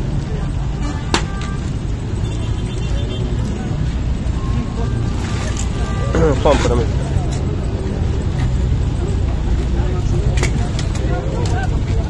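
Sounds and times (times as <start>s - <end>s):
crowd talking indistinctly: 0.0s - 12.0s.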